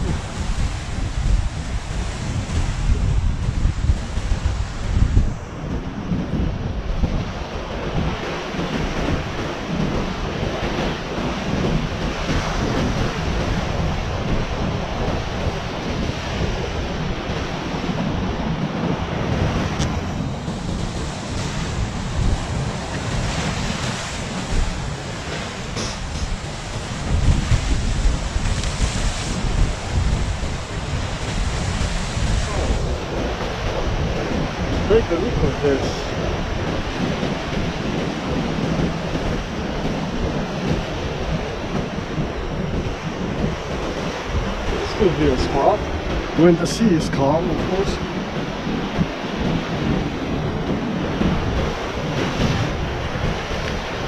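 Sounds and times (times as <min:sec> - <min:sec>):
waves breaking on rocky shore: 0:00.0 - 0:54.0
wind buffeting microphone: 0:00.0 - 0:54.0.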